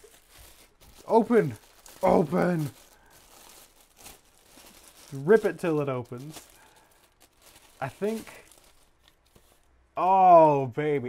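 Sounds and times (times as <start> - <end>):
plastic bag crinkling: 0.0 - 9.7.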